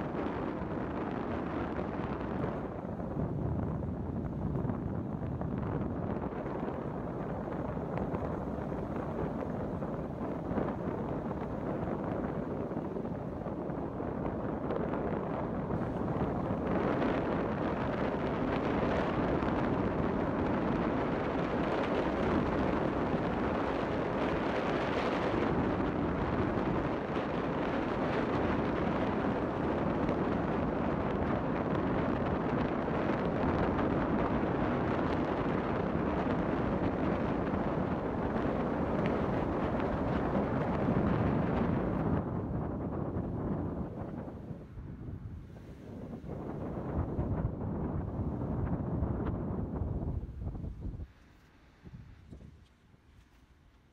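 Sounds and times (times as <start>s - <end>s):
wind rushing over microphone: 0.0s - 53.9s.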